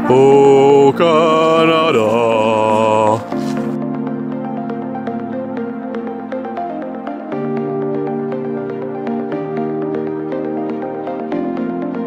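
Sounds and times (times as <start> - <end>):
person singing held notes: 0.0 - 3.8.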